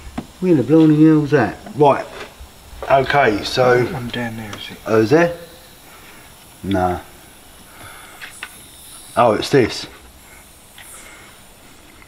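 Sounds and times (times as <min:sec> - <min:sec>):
faint hiss of escaping air: 0:00.0 - 0:12.0.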